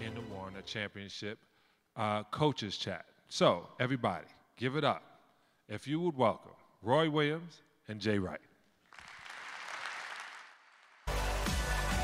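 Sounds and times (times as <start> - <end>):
audience applauding: 8.9 - 11.3.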